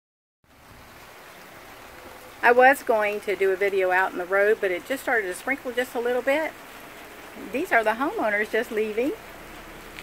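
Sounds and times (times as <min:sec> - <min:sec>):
light rain hissing: 0:00.5 - 0:10.0.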